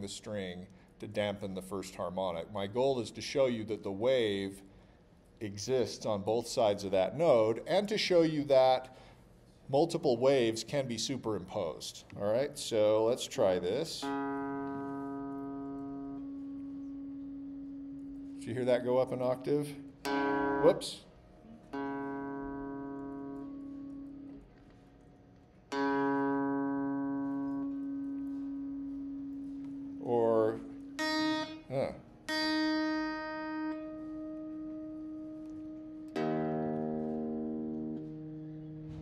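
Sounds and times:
guitar string harmonic ringing: 13.9s - 24.8s, 25.6s - 39.0s.

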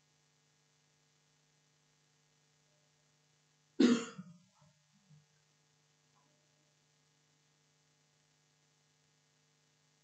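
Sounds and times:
low electrical hum: 0.0s - 10.0s
person coughing: 3.8s - 4.3s.

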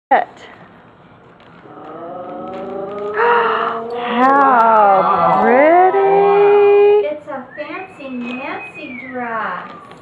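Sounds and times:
woman saying ooh: 3.1s - 9.8s.

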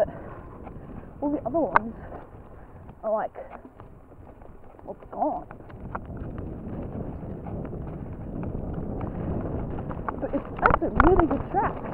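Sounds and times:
bike tyres rumbling over dirt: 0.0s - 11.9s
wind buffeting microphone: 0.0s - 11.9s.

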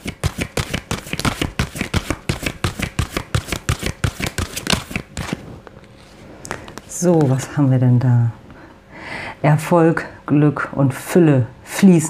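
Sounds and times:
cards being shuffled: 0.0s - 7.5s.

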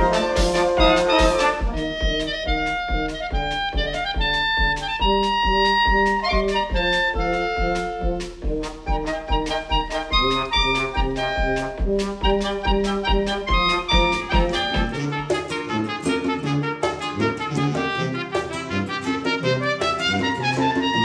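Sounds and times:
steady drum beat: 0.0s - 19.3s
clarinets and brass melody: 0.0s - 21.0s.

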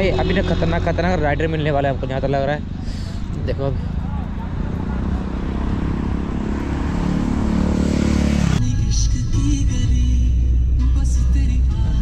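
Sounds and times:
passing vehicle rumble: 0.0s - 8.7s
roadside traffic noise: 0.0s - 11.1s
background music: 8.4s - 12.0s.

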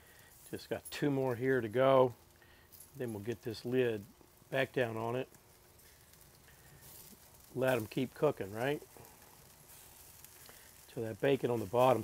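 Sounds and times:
food sizzling on a grill: 0.0s - 12.0s.

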